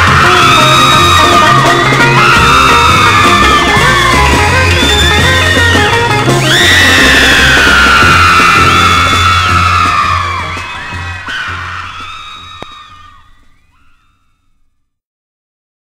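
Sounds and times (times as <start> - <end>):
surf rock band playing: 0.0 - 13.4
high screams gliding down: 0.0 - 14.5.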